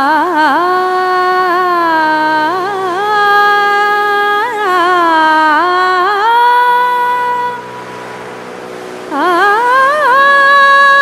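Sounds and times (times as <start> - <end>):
tanpura drone: 0.0 - 11.0.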